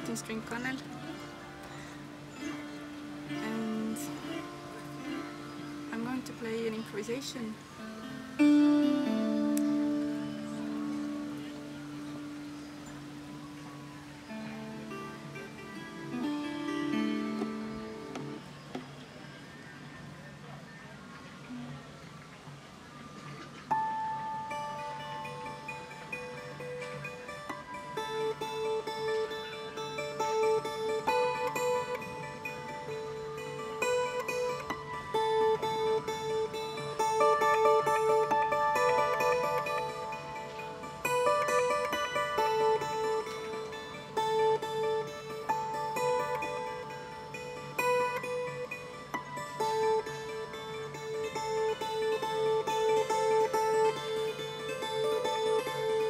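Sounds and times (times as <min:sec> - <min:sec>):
plucked zither notes ringing: 0:00.0 - 0:18.4, 0:23.6 - 0:56.0.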